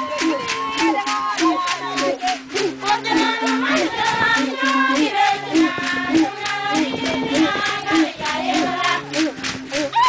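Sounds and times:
group singing: 0.0 - 9.9.

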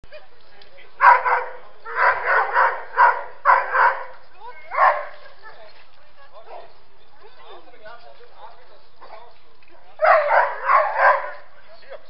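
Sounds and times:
dog barking: 1.0 - 4.1, 4.7 - 5.2, 10.0 - 11.4.

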